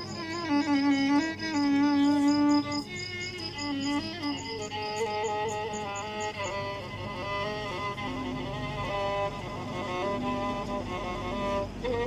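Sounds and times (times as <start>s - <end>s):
crickets chirping: 0.0s - 12.0s
solo violin melody: 0.0s - 12.0s.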